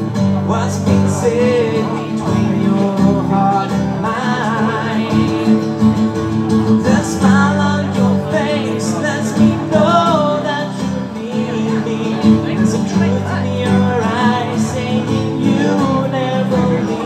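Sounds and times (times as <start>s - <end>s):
man singing country ballad: 0.0s - 17.0s
strummed acoustic guitar: 0.0s - 17.0s.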